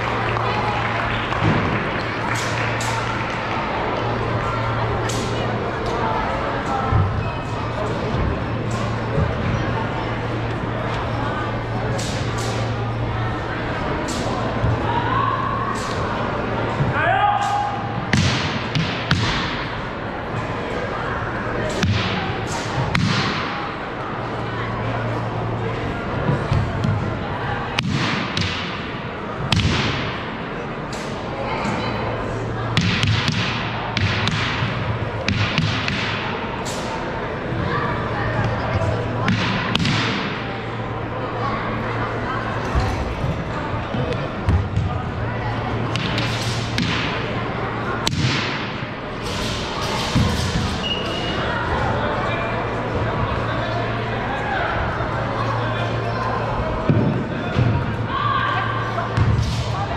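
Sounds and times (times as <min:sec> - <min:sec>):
echoing chatter in hall: 0:00.0 - 0:59.9.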